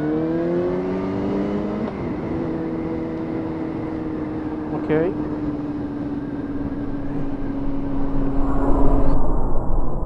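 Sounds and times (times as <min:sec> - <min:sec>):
motorcycle engine cruising: 0:00.0 - 0:09.2
wind rush: 0:05.4 - 0:10.0.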